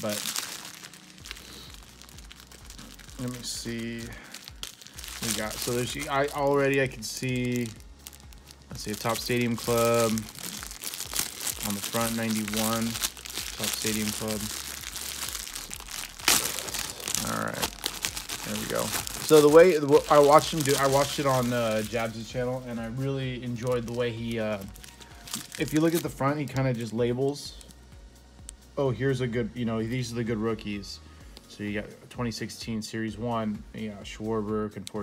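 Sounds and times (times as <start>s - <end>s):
plastic packaging crinkling: 0.0s - 27.8s.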